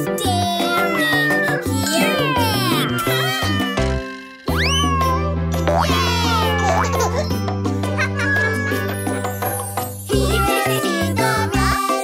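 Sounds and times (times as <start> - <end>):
upbeat children's song: 0.0 - 12.0
cartoon cat meowing: 0.4 - 7.2, 8.2 - 8.9.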